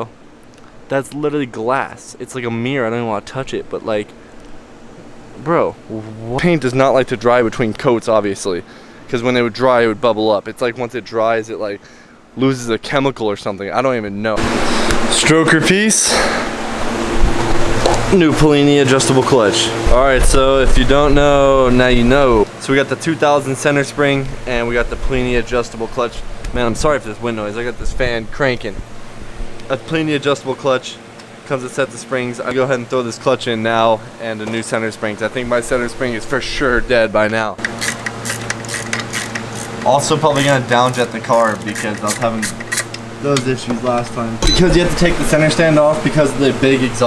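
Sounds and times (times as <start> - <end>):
faint steady hum: 0.0 - 47.0
fan wind on microphone: 14.3 - 30.8.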